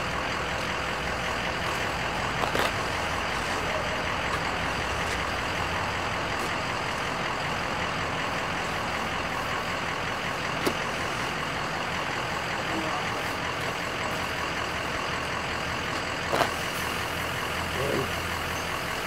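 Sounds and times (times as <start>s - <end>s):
steady engine-like drone: 0.0s - 19.0s.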